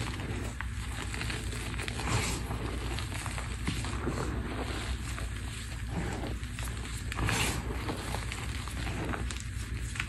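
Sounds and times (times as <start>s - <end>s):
fingers crunching chalk powder: 0.0s - 10.0s.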